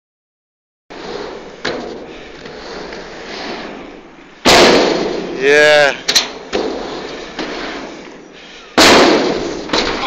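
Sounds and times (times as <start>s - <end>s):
skate wheels rolling on ramp: 0.9s - 10.0s.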